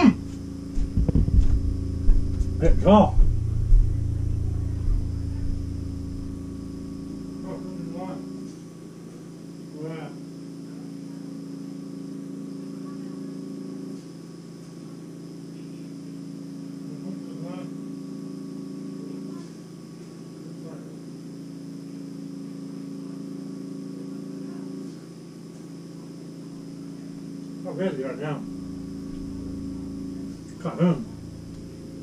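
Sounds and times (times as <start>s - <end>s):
faint high whine: 0.0s - 32.0s
low electrical hum: 0.0s - 32.0s.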